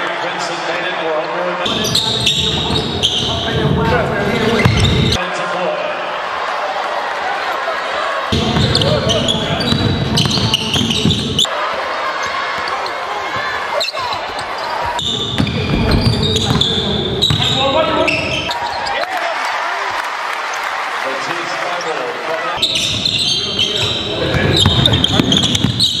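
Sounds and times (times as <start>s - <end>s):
voices: 1.6s - 5.9s, 7.4s - 19.5s, 21.0s - 25.9s
basketball bouncing on court: 1.7s - 3.9s, 4.5s - 5.2s, 8.3s - 11.5s, 14.4s - 18.6s, 22.6s - 26.0s.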